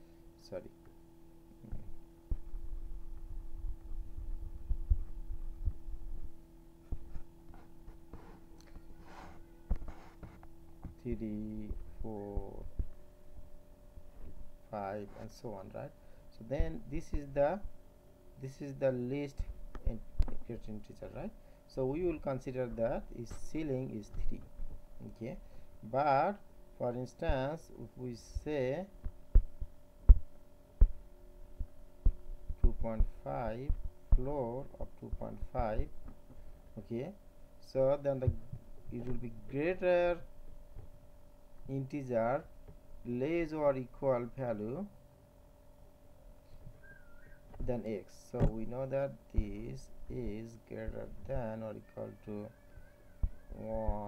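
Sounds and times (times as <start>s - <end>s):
steady electrical hum: 0.0s - 54.0s
stylus tapping on tablet: 29.0s - 31.0s.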